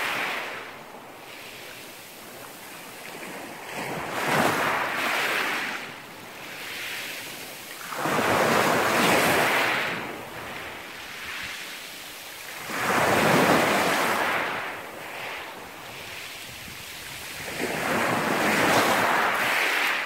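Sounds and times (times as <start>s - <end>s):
waves breaking on pebble beach: 0.0s - 0.7s, 1.3s - 20.0s.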